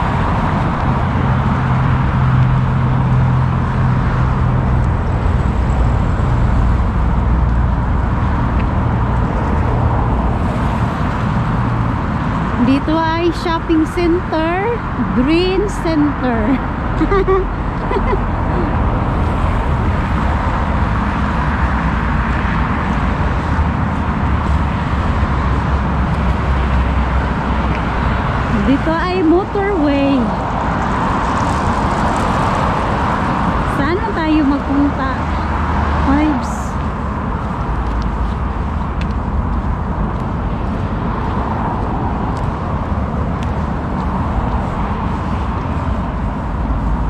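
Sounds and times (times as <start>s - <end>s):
road traffic passing: 0.0s - 47.0s.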